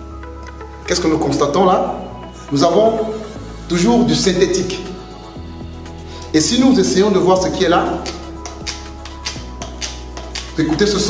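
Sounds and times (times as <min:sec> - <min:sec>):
adhesive peeling crackles: 0:08.1 - 0:10.9.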